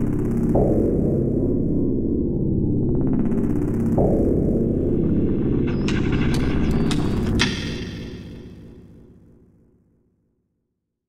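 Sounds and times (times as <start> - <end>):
dark synthesizer trailer music: 0.5 - 9.4
loud hit: 4.8 - 9.2.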